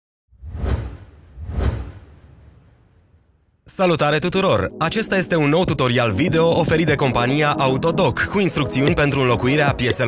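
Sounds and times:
whoosh sound effects: 0.3 - 3.4
deep low rumble: 0.4 - 3.6.

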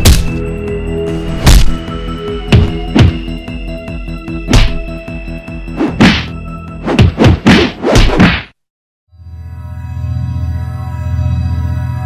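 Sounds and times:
background music: 0.0 - 7.8, 9.2 - 12.0.

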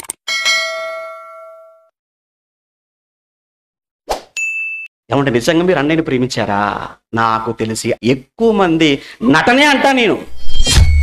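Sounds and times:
bright bell ding: 0.3 - 1.9, 4.4 - 4.9.

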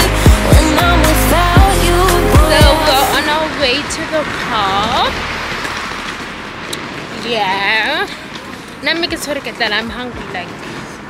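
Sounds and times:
tyres hissing on road: 0.0 - 11.0.

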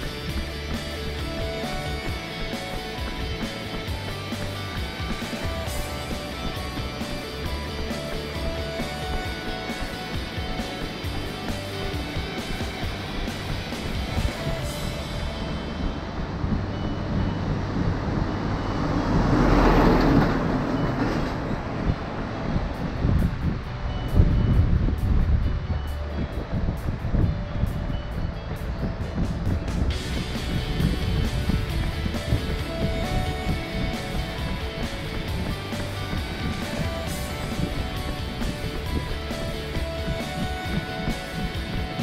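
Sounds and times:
vehicle passing: 0.0 - 27.9, 28.9 - 42.0
background music: 0.0 - 42.0.

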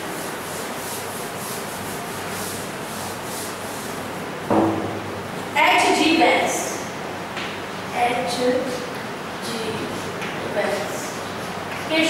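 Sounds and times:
duster rubbing a blackboard: 0.0 - 4.4.

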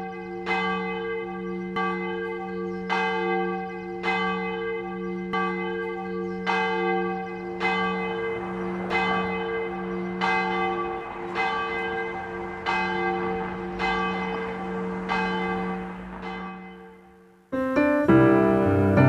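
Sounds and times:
church bell ringing: 0.0 - 19.0.

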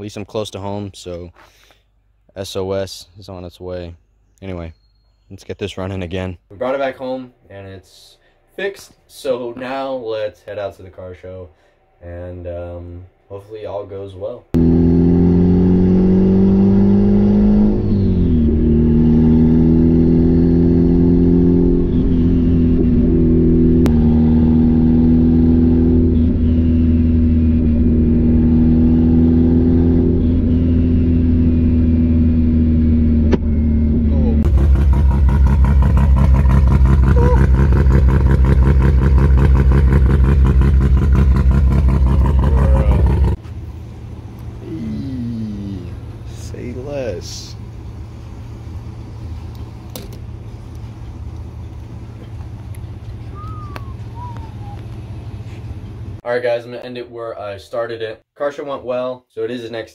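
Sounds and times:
car engine and exhaust drone: 14.5 - 56.2.

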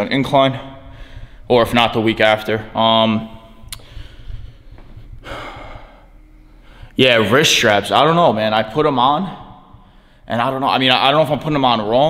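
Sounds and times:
man exhaling: 5.2 - 7.0.

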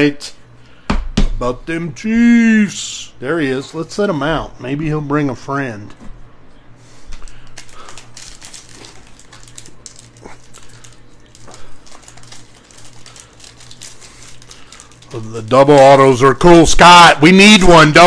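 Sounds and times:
foil pack crinkling: 6.9 - 16.8
foil pack tearing: 7.2 - 16.1.

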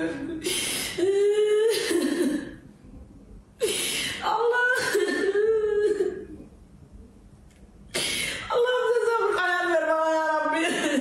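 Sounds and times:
woman crying and wailing: 0.0 - 2.5, 4.2 - 6.4, 8.5 - 11.0.

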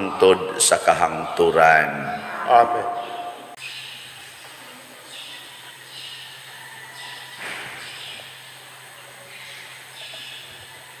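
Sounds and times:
sound system hum and hiss: 0.0 - 11.0.

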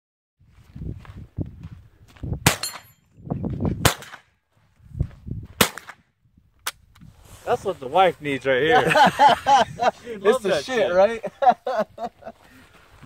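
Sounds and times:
rifle shots: 2.4 - 2.9, 3.8 - 4.3, 5.6 - 6.0.

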